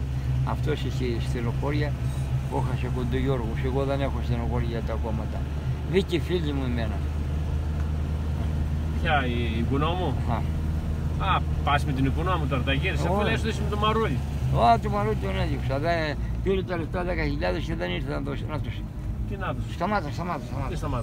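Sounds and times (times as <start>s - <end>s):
car engine and tyres hum: 0.0s - 21.0s
man talking: 0.4s - 7.1s, 9.0s - 10.6s, 11.2s - 21.0s.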